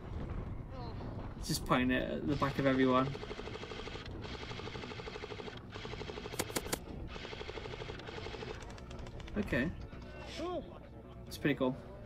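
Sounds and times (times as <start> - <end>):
airsoft gun firing on full auto: 2.4 - 8.9.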